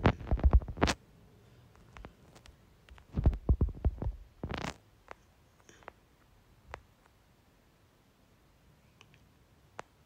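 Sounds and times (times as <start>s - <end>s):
rustling: 0.0s - 1.0s, 1.6s - 6.0s
fingertips tapping touchscreen: 1.8s - 6.0s.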